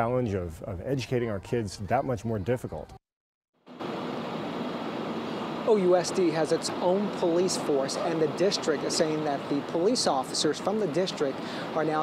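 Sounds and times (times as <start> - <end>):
street noise hiss: 3.7 - 12.0.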